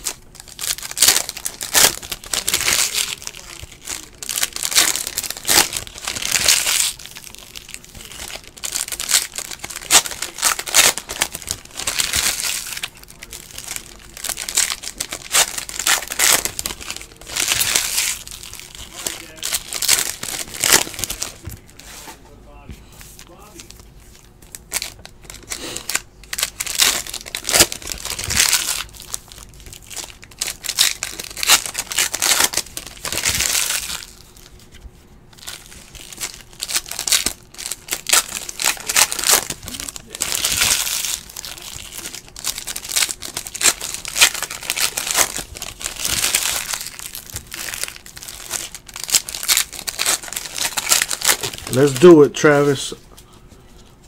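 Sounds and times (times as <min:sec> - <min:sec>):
foil wrappers crinkling and tearing: 0:00.0 - 0:22.0, 0:23.1 - 0:54.0.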